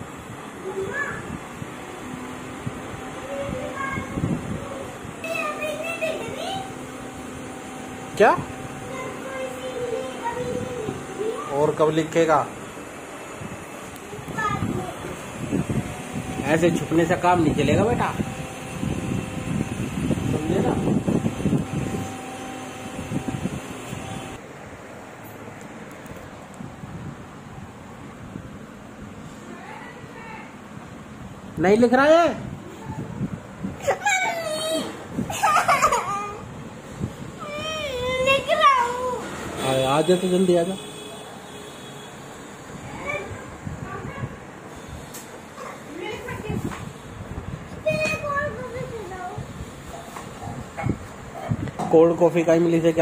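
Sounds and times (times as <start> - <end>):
mechanical room hum: 0.0 - 53.0.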